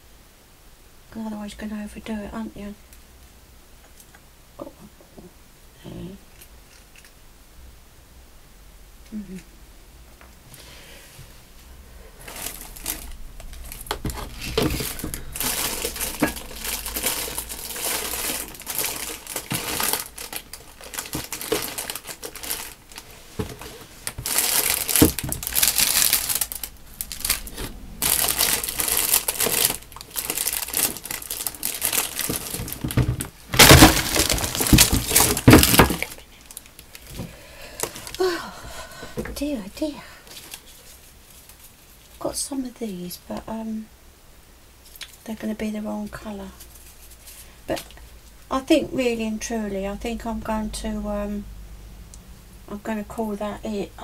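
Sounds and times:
plastic wrapping crinkling: 12.1s - 38.4s.

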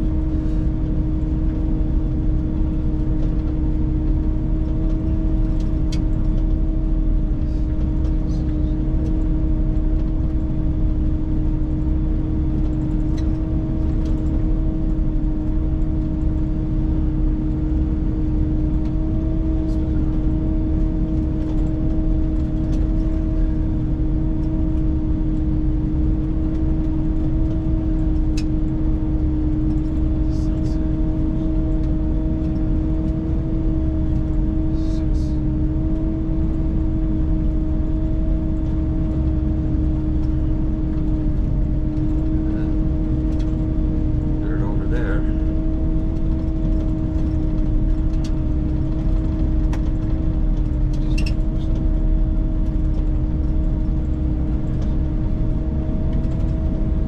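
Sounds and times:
snowcat engine rumble: 0.0s - 57.0s
steady hum: 0.0s - 57.0s.

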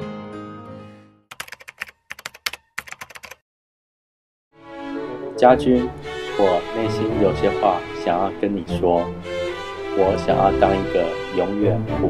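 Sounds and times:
computer keyboard typing clicks: 1.3s - 3.4s.

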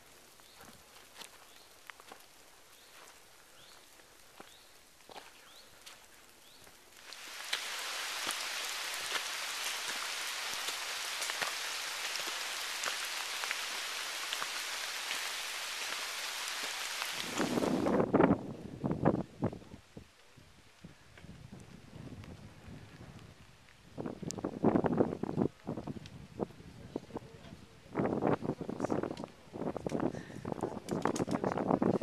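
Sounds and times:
rain dripping on foliage: 0.0s - 32.0s
steady hiss of rain: 0.0s - 32.0s
wind gusts buffeting microphone: 7.3s - 32.0s.

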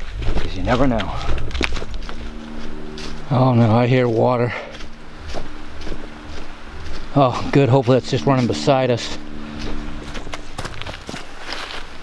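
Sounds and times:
footsteps through dry leaves: 0.0s - 12.0s
wind rumble on microphone: 0.0s - 12.0s.

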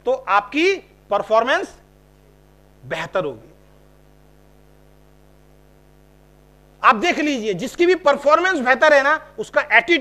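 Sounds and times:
man speaking: 0.0s - 1.9s, 2.8s - 3.6s, 6.8s - 10.0s
faint electrical hum: 0.0s - 10.0s.

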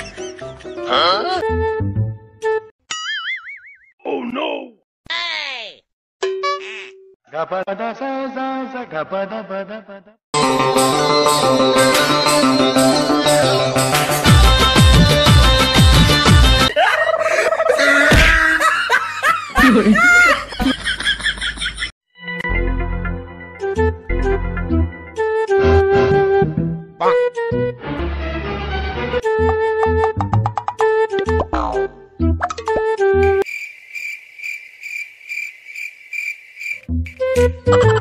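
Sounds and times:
background music: 0.0s - 2.7s, 10.4s - 16.7s, 22.2s - 33.4s, 36.8s - 38.0s
high-pitched laughter: 16.7s - 21.9s.

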